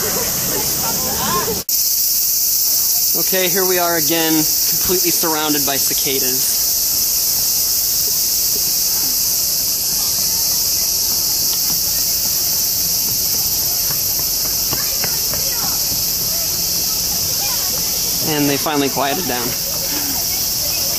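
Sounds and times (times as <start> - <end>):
cicadas calling loudly: 0.0 - 20.9.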